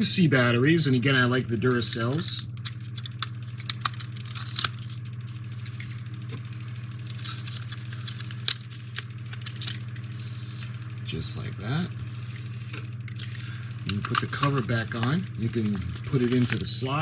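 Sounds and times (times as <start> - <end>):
steady low hum: 0.0 - 17.0
batteries clinking and clicking: 2.6 - 6.0, 7.0 - 10.7, 13.9 - 16.9.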